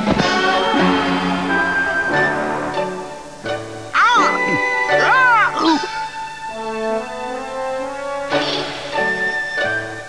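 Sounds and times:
background music with held notes: 0.0s - 10.0s
cartoon character crying out: 3.9s - 6.0s.

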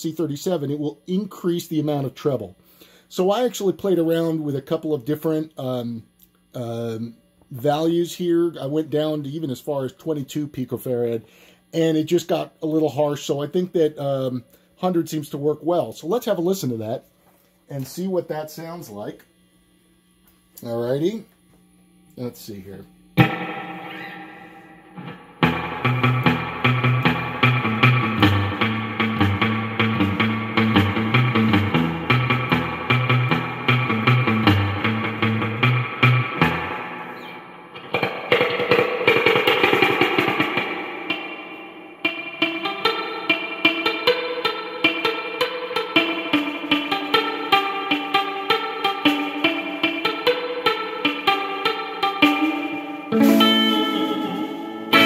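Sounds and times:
electric guitar with spring reverb: 23.2s - 55.0s.

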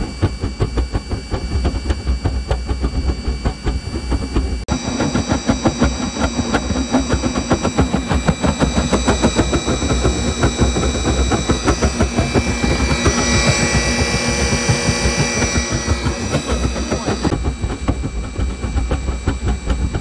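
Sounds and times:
blower whine: 0.0s - 20.0s
low rumble: 0.0s - 20.0s.

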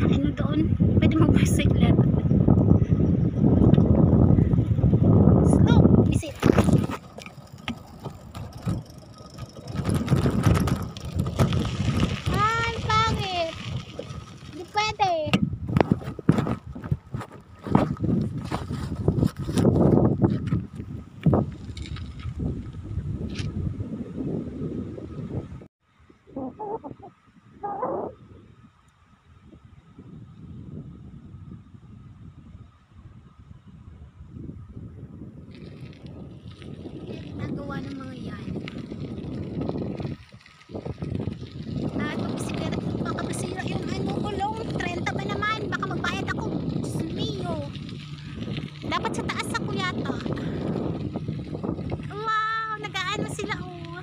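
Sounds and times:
wind on microphone: 0.0s - 54.0s
phone rattling in bicycle basket: 6.2s - 12.6s.

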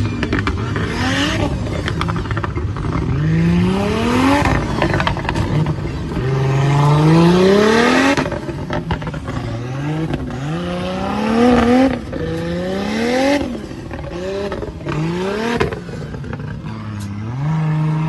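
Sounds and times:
buggy engine revving: 0.0s - 18.0s.

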